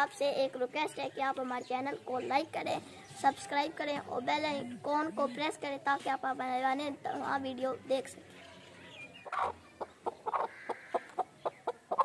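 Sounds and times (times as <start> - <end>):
hen clucking: 9.2 - 12.0.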